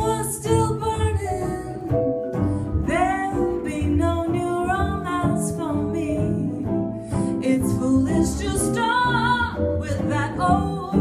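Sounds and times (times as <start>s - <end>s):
upright bass: 0.0s - 11.0s
woman singing jazz: 0.0s - 11.0s.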